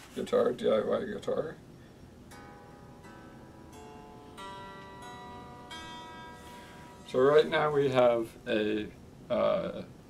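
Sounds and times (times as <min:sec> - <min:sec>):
electric guitar picked notes: 0:02.3 - 0:08.3.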